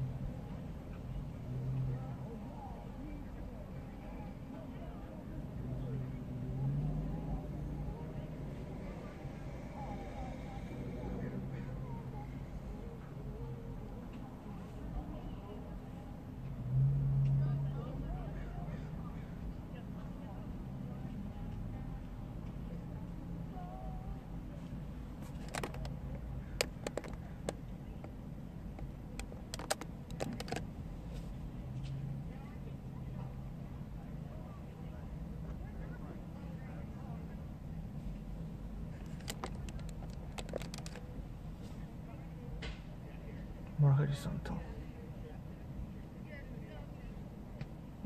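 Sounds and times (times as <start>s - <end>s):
car engine humming: 0.0s - 42.4s.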